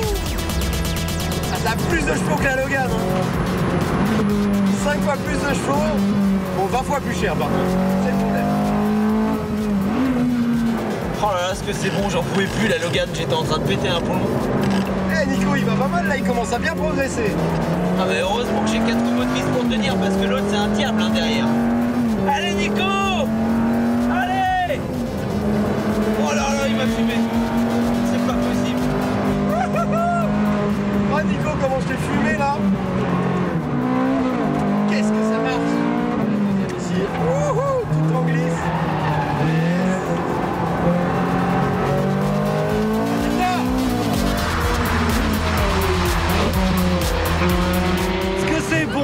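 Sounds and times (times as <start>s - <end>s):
sports car engines revving: 0.0s - 49.0s.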